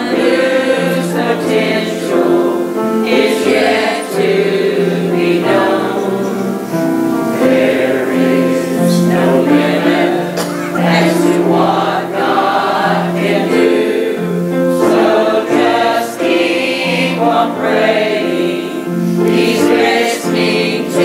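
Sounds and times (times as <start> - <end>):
choir singing gospel: 0.0 - 21.0
piano accompaniment: 0.0 - 21.0.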